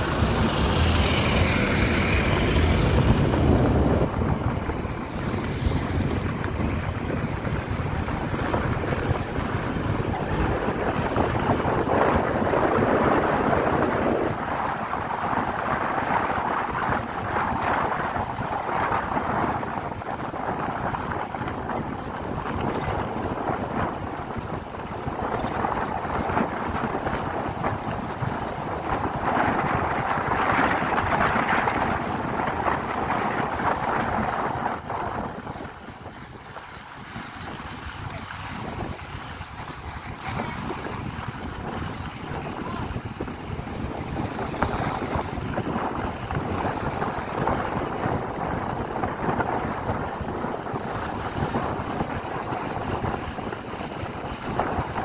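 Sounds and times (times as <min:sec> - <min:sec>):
car driving on gravel road: 0:00.0 - 0:55.0
wind rushing over microphone: 0:00.0 - 0:55.0.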